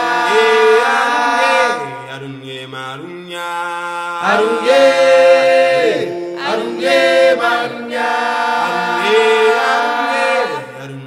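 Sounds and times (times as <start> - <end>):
african style music chanted vocals: 0.0 - 11.0.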